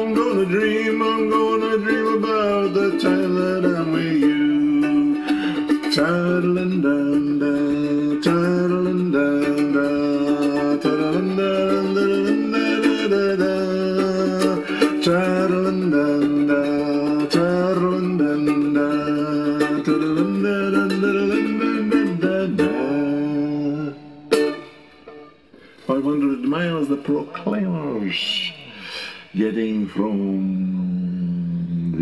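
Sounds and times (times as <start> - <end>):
man singing wordlessly: 0.0 - 24.3, 25.9 - 32.0
toy ukulele strummed: 0.0 - 25.4.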